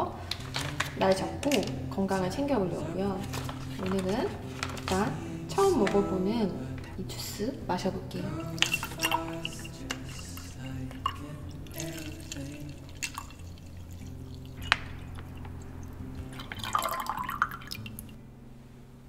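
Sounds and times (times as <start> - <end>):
background music: 0.0 - 19.0
juice pouring into glass: 8.3 - 18.2.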